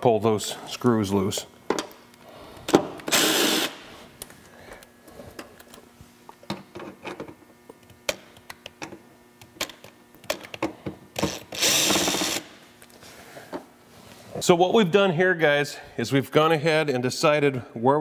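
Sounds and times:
cordless drill running: 3.1 - 3.8, 11.2 - 12.6.

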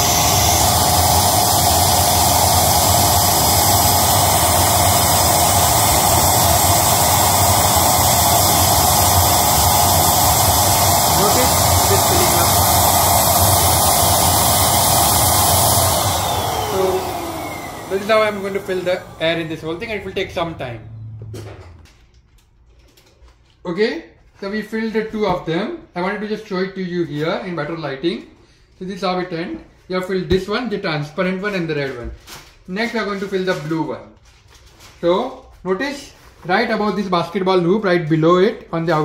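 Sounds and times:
electric balloon pump running: 0.0 - 22.2.

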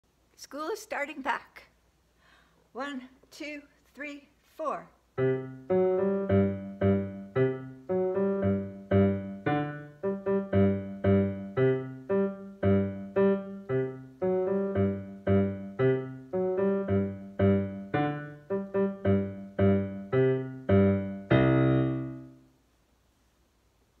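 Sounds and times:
digital piano chords: 5.2 - 22.4.

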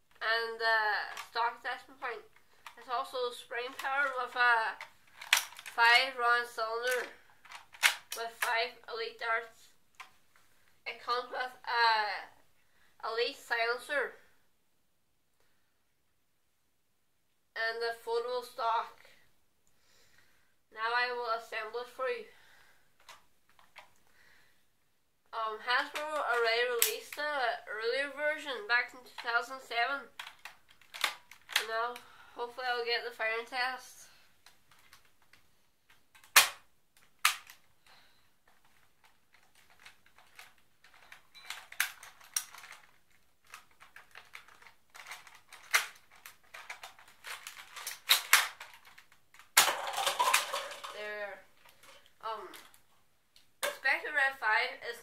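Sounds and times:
plastic toy parts clicking: 1.1 - 1.4, 3.7 - 5.8, 6.8 - 8.6, 30.1 - 32.0, 34.4 - 37.7, 38.5 - 52.8, 53.6 - 53.8.

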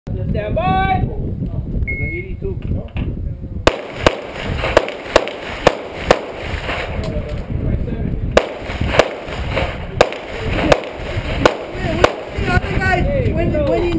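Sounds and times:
wind rumble on microphone: 0.1 - 13.9
pistol shots: 3.7 - 7.0, 8.4 - 12.4.

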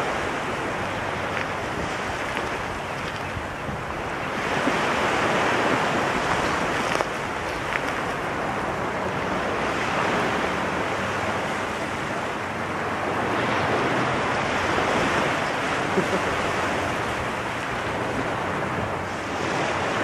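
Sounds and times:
wind on microphone: 0.0 - 20.0
small waves breaking on shells: 4.4 - 8.6.

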